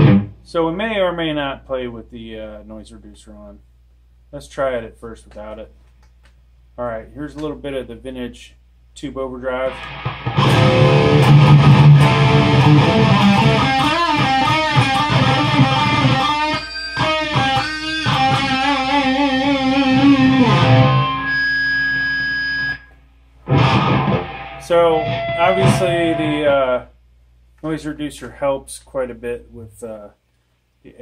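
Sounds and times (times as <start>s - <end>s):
distorted electric guitar: 0.0s - 0.4s, 9.7s - 26.7s.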